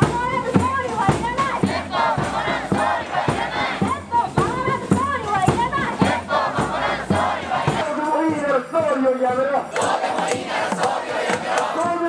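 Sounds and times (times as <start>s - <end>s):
steady drum beat: 0.0s - 12.0s
crowd chanting in unison: 0.8s - 7.8s, 9.6s - 12.0s.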